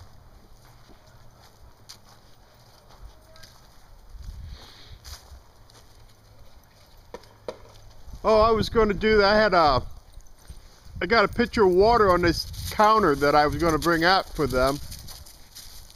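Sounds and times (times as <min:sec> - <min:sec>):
dogs running over dry leaves: 0:00.0 - 0:07.1, 0:11.7 - 0:15.9.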